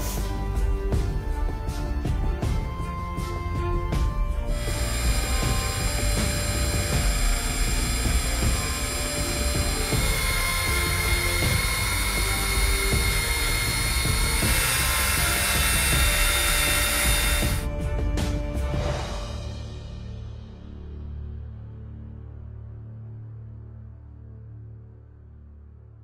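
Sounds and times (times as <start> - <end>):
electric drill motor whine: 3.2 - 17.7
sanding hiss: 4.5 - 17.6.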